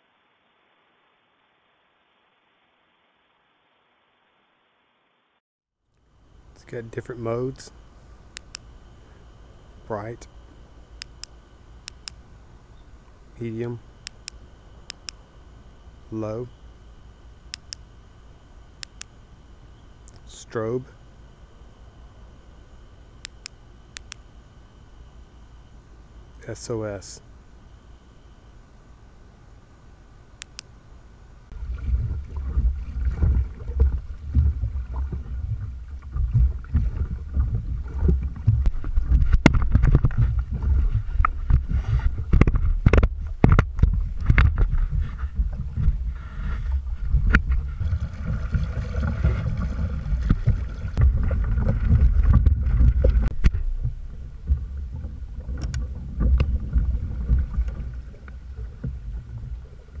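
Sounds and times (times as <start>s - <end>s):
wind and water rumble: 31.5s - 60.0s.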